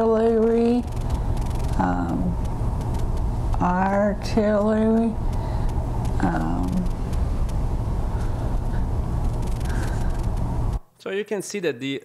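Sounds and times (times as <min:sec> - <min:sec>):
low rumble and hiss: 0:00.0 - 0:12.0
faint clicks: 0:00.8 - 0:10.5.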